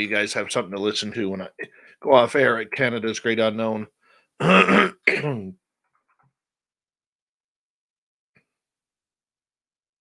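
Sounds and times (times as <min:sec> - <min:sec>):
man clearing his throat: 0:04.4 - 0:05.6.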